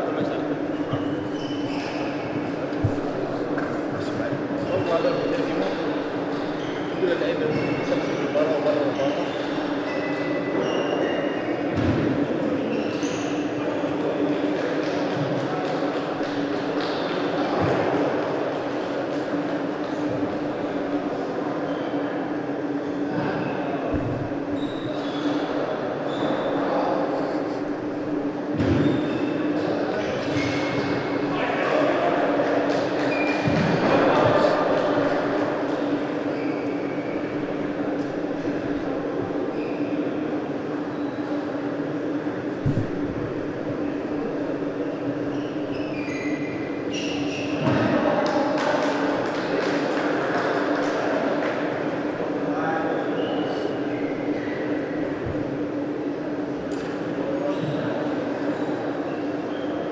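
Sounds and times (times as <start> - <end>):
steady low hum: 0.0 - 7.0, 22.2 - 31.3, 33.5 - 46.9.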